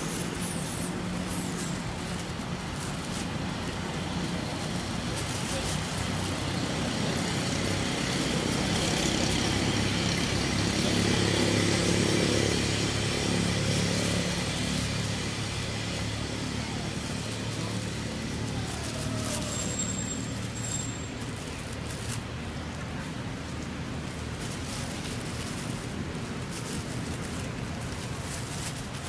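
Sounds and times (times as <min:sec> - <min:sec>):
vehicle engine hum passing: 0:00.0 - 0:29.0.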